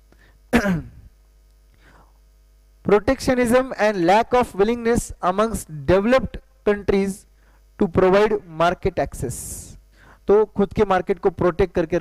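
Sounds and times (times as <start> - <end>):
electrical mains hum: 0.0 - 12.0
man speaking: 2.9 - 12.0.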